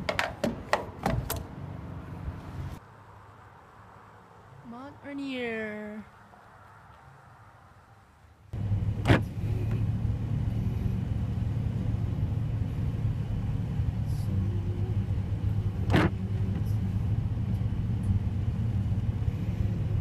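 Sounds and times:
engine and tyre rumble: 0.0 - 5.2, 6.0 - 20.0.

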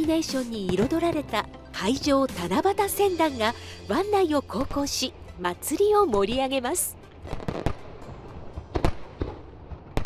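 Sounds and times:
fireworks crackle: 7.3 - 7.9
fireworks bangs: 7.3 - 8.0, 8.6 - 10.0.

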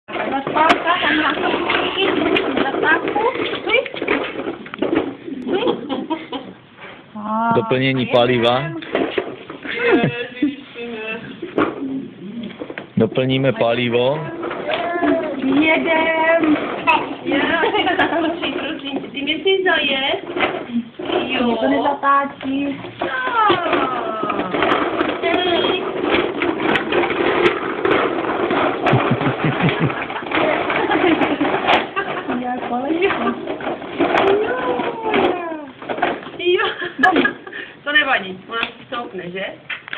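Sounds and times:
plastic toy wheels rolling on concrete: 0.1 - 6.5, 7.6 - 39.9
people talking: 0.2 - 4.0, 21.1 - 26.0, 32.2 - 35.7
indistinct adult voices: 9.6 - 26.2.

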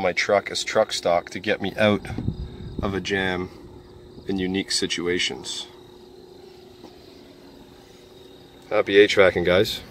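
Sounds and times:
high-pitched insect trill: 0.0 - 9.9.

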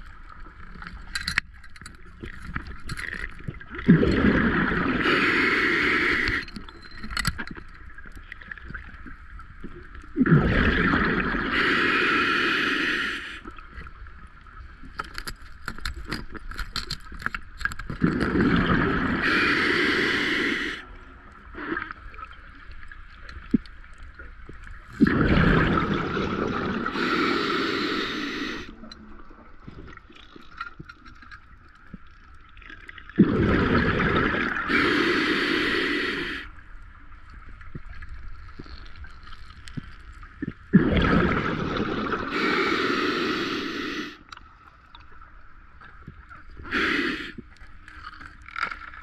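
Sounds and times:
exhaled bubbles rumbling: 2.2 - 6.6, 8.2 - 11.7, 17.9 - 19.4, 24.4 - 30.5, 32.6 - 34.9, 37.3 - 44.3
regulator inhale hiss: 5.0 - 6.6, 11.4 - 13.6, 19.1 - 20.9, 26.7 - 28.7, 34.5 - 36.6, 42.1 - 44.2, 46.6 - 47.5.

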